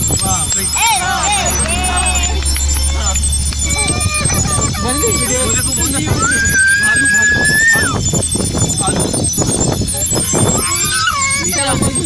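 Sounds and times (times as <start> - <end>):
voices: 0.0 - 12.0
child squealing: 3.8 - 8.0, 10.2 - 12.0.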